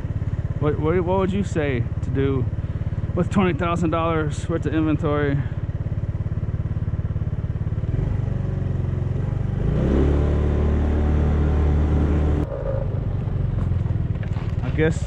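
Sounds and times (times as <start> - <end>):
small motorcycle engine revving: 0.0 - 15.0.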